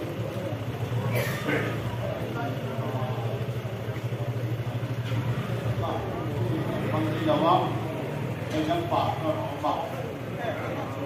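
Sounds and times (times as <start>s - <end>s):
people talking: 0.0s - 11.0s
vehicle engine idling: 0.0s - 11.0s.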